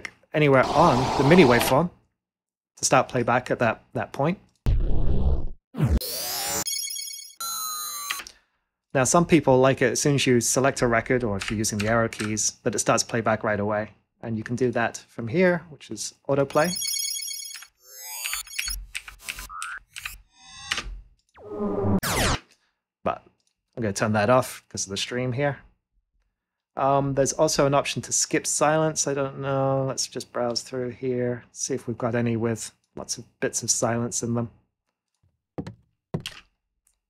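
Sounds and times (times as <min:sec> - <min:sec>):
synthesized laser zaps: 0:00.6 - 0:01.8
high-heel footsteps on wood: 0:35.6 - 0:36.4.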